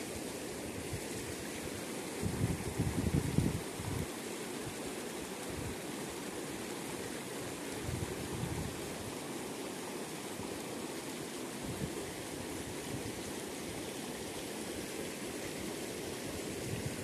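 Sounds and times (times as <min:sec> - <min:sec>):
stream rushing over stones: 0:00.0 - 0:17.0.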